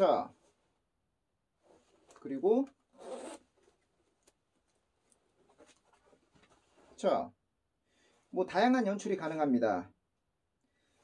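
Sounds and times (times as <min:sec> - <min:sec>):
jacket fabric rustling: 0:00.0 - 0:09.4
metal zipper being pulled open: 0:02.9 - 0:03.8.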